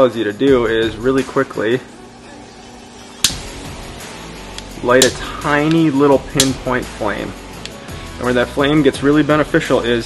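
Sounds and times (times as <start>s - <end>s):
piezo ignition click: 3.2s - 3.6s, 4.4s - 6.7s, 7.5s - 7.8s.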